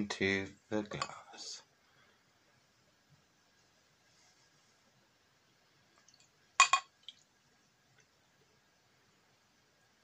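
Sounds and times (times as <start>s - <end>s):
glass bottle clinking on glass: 6.6s - 6.9s.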